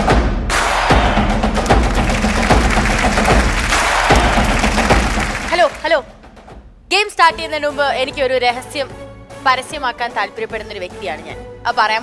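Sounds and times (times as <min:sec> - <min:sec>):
background music with drum beat: 0:00.0 - 0:07.6
audience clapping: 0:01.5 - 0:06.1.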